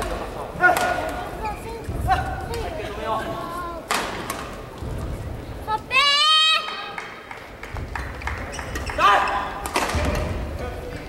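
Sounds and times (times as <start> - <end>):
racket hitting shuttlecock: 0.0 - 1.2, 3.8 - 4.6, 7.8 - 10.6.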